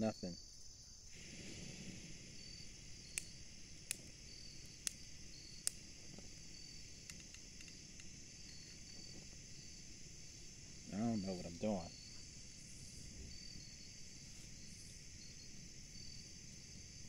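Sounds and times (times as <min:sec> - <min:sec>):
insects chirping: 0:00.0 - 0:17.0
lighter clicking: 0:02.5 - 0:09.0.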